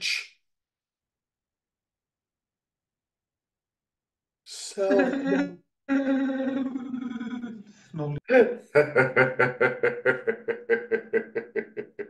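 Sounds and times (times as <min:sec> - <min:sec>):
person laughing: 0:04.8 - 0:05.5, 0:08.8 - 0:12.0.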